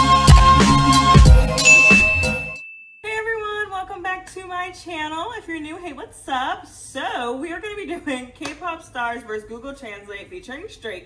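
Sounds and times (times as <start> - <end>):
beat-driven intro music: 0.0 - 2.6
notification bell ding: 1.6 - 3.2.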